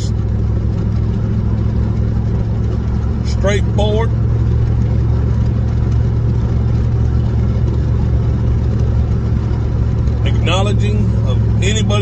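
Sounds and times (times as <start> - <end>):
car interior drone: 0.0 - 12.0.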